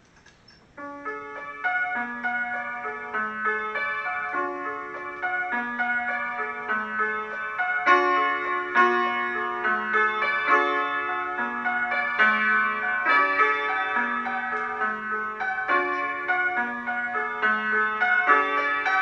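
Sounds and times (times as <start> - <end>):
solo piano playing: 0.7 - 19.0.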